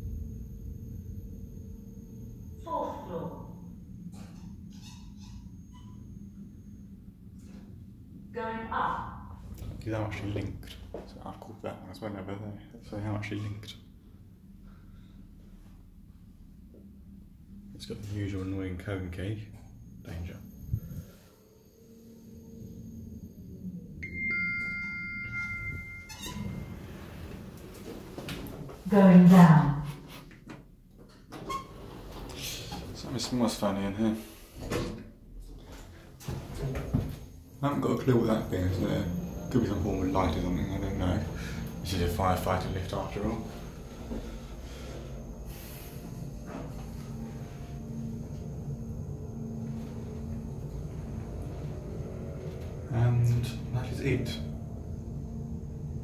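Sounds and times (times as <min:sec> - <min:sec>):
lift car hum and rumble: 0:00.0 - 0:56.0
lift electronic chime: 0:19.8 - 0:27.9, 0:36.7 - 0:56.0.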